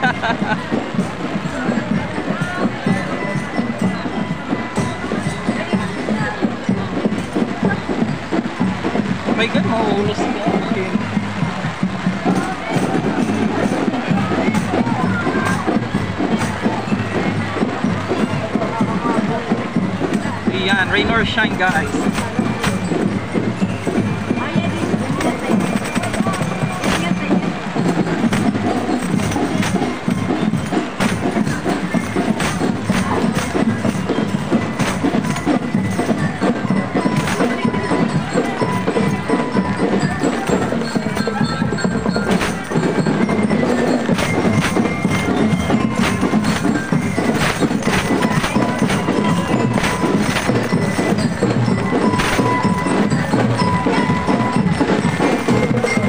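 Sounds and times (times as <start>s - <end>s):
bell-lyre melody: 0.0s - 56.0s
steady drumbeat: 0.0s - 56.0s.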